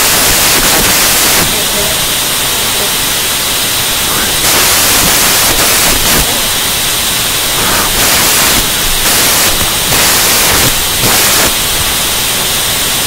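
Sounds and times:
loud static hiss: 0.0s - 13.0s.

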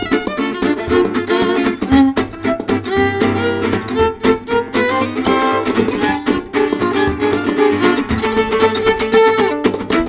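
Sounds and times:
acoustic guitar driving rhythm: 0.0s - 10.0s
violin: 0.0s - 10.0s.

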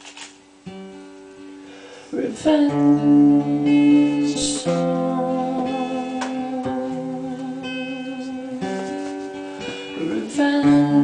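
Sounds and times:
acoustic guitar chords strummed: 0.6s - 11.0s.

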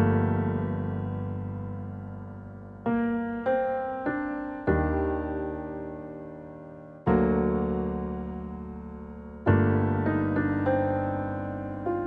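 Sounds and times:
piano-like keyboard chords: 0.0s - 12.0s.

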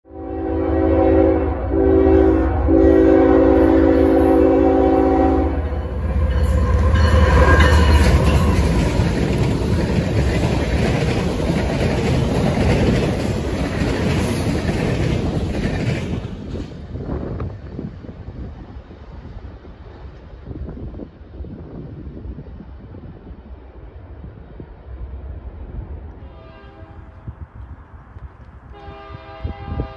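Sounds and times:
locomotive air horn blasts: 0.1s - 8.4s, 26.2s - 27.3s, 28.7s - 29.9s
wheels clattering over rails: 6.0s - 17.0s.

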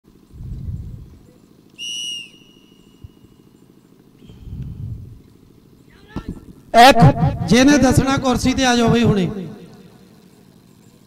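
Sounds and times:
steady low hum: 0.1s - 11.0s
low rumbling swells: 0.3s - 1.3s, 4.3s - 5.3s
high whistle blast: 1.8s - 3.3s.

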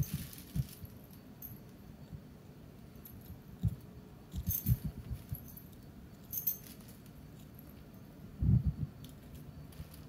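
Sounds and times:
light metallic jingle: 0.0s - 1.9s, 2.9s - 8.2s.

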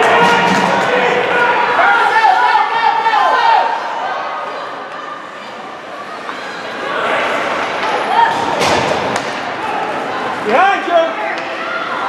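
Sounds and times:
spectators chatter: 0.0s - 12.0s.

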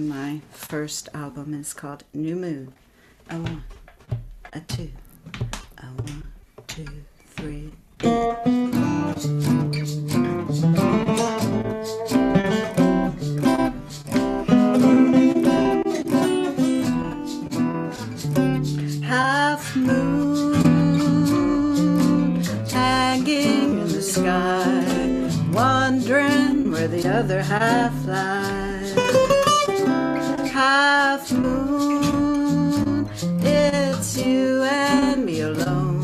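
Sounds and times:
acoustic guitars playing: 7.4s - 36.0s.

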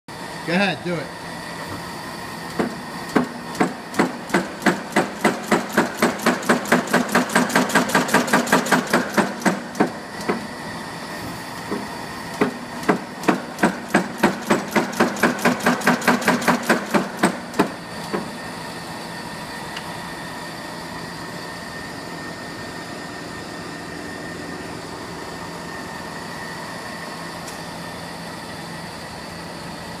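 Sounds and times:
mechanical hum with whine: 0.1s - 30.0s
metal-on-metal machine strikes: 2.6s - 10.5s, 12.4s - 17.8s.

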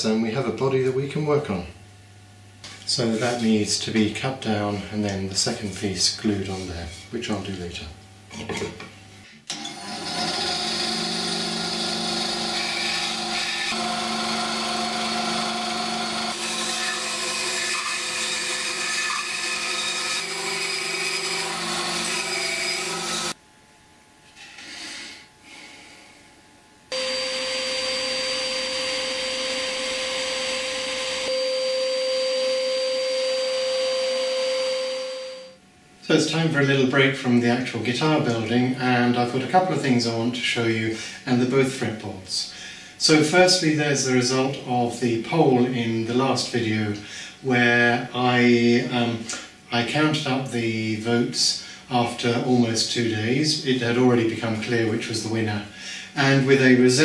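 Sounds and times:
bandsaw cutting wood: 9.5s - 23.4s
drum sander humming and whining: 9.5s - 23.4s, 26.9s - 34.6s.

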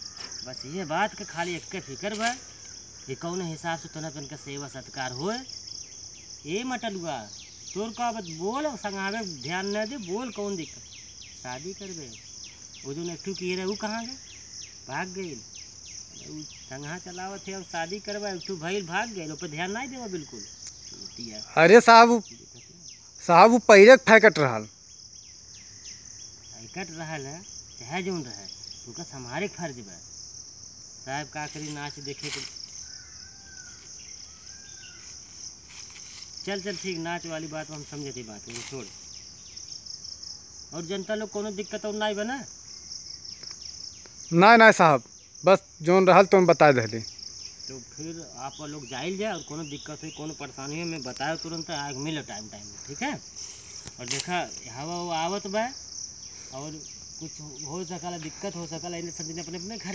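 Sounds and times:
insects chirring: 0.0s - 59.9s
man speaking: 16.2s - 24.7s, 44.3s - 47.1s, 47.7s - 53.2s, 54.0s - 55.8s, 56.4s - 59.9s.

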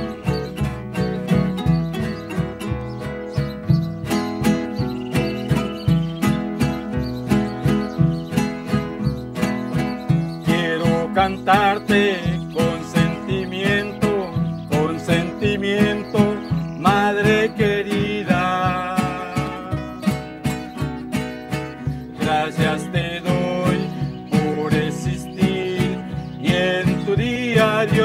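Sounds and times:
acoustic guitar strumming: 0.0s - 28.0s
hand drum beating: 0.0s - 28.0s.

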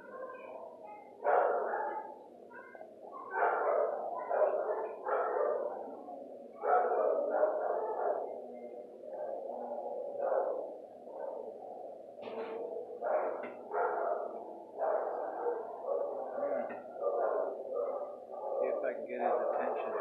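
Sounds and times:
dogs barking: 0.0s - 20.0s.

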